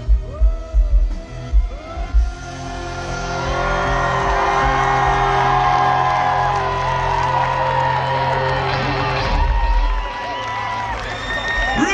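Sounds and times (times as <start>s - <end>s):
crowd singing along and whooping: 0.2s - 11.6s.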